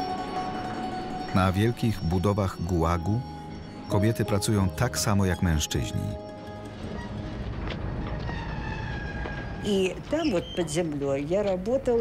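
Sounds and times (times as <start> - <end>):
faint steady tones: 0.0 - 7.7
cart wheels rolling on rails: 6.5 - 12.0.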